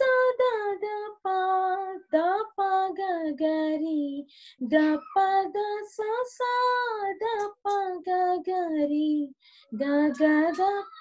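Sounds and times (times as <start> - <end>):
woman singing held notes: 9.8 - 11.0.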